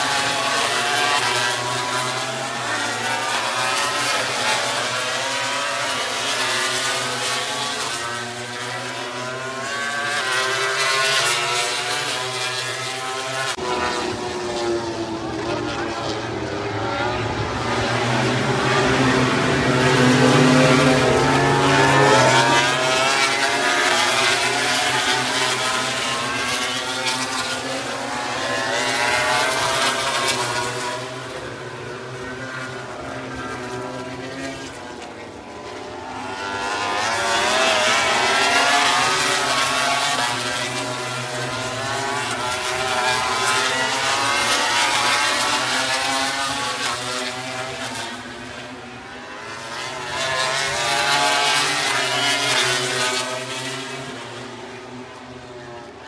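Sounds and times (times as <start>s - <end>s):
racing motorcycles passing: 0.0s - 56.0s.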